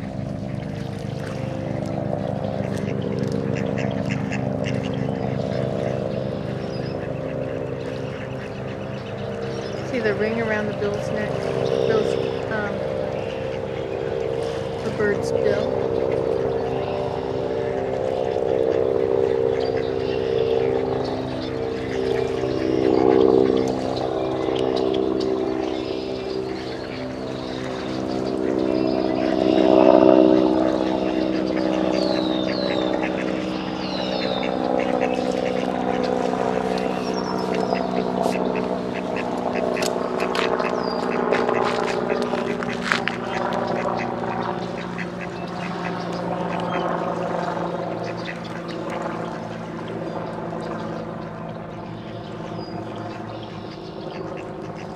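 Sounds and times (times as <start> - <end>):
low motor drone: 0.0 - 54.9
ducks quacking: 0.2 - 50.2, 51.8 - 54.9.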